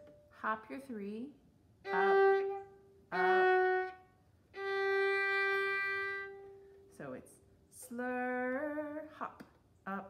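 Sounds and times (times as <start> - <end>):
violin sustained note: 1.8 - 7.0.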